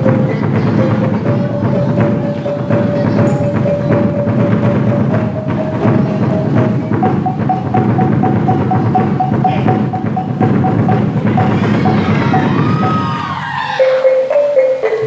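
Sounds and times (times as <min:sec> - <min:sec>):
hand drumming: 0:00.0 - 0:15.0
wavering reed melody: 0:00.0 - 0:15.0.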